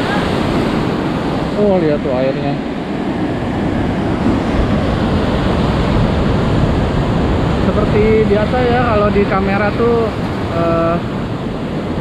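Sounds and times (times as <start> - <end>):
waves breaking on stony shore: 0.0 - 12.0.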